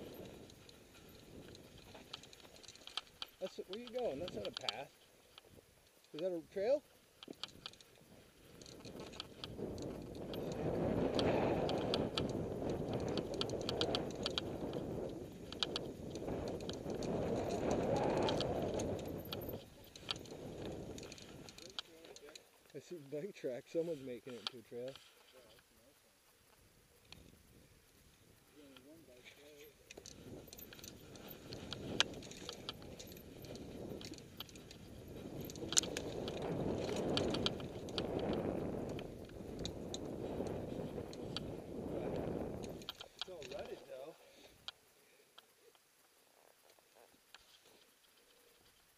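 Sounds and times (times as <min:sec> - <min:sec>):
bike clicks and rattles: 0:00.0 - 0:25.7, 0:26.3 - 0:48.9
wind on microphone: 0:07.4 - 0:21.6, 0:30.0 - 0:43.4.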